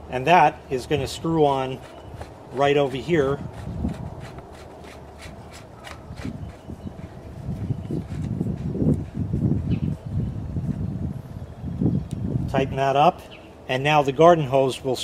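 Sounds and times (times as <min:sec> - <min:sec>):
plastic scraping on plastic: 0:01.7 - 0:07.1.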